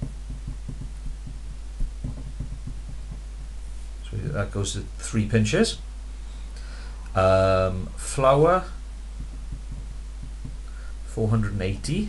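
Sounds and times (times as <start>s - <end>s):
pen tapping on paper: 0.0s - 3.2s, 9.2s - 10.6s
steady low hum: 0.0s - 12.0s.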